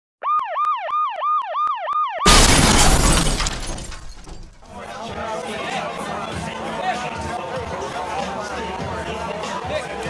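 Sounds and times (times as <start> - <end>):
loud crash: 2.3 - 4.8.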